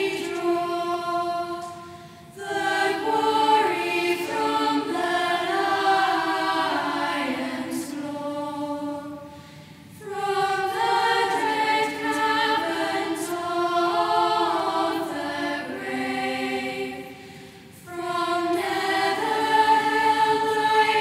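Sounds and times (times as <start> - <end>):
choir singing chant: 0.0 - 21.0.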